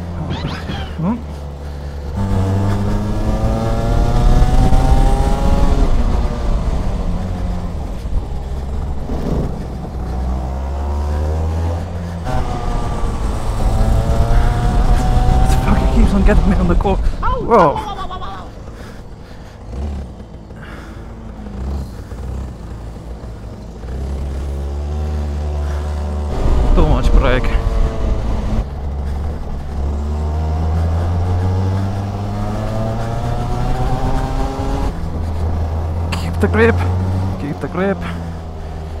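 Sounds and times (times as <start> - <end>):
go-kart engine revving: 0.0 - 39.0
person speaking: 14.7 - 18.5, 36.0 - 38.2.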